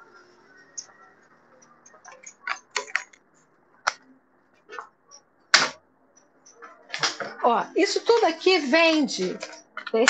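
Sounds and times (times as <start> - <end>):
wooden pieces clicking and knocking: 1.9 - 4.0, 9.3 - 10.0.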